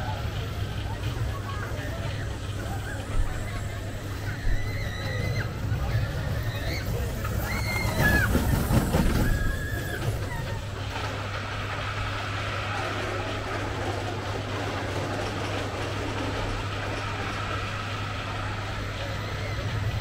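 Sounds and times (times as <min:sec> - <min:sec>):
roller coaster running with low hum: 0:00.0 - 0:20.0
roller coaster squeal: 0:00.0 - 0:20.0.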